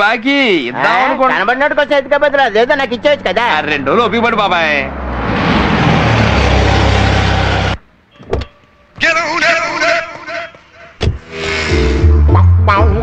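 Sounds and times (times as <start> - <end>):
car driving by: 2.2 - 7.8.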